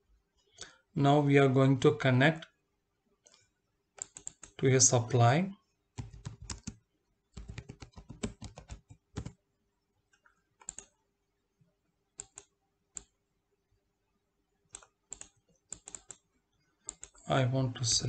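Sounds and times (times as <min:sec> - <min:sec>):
computer keyboard typing: 0:04.0 - 0:04.6, 0:06.0 - 0:09.4, 0:10.6 - 0:11.0, 0:12.2 - 0:13.1, 0:14.7 - 0:17.3.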